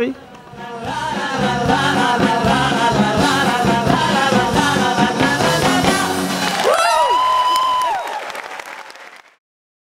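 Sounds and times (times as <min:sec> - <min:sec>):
live band song: 0:00.2 - 0:08.4
audience applauding and cheering: 0:05.6 - 0:09.4
long high cheer: 0:06.4 - 0:09.2.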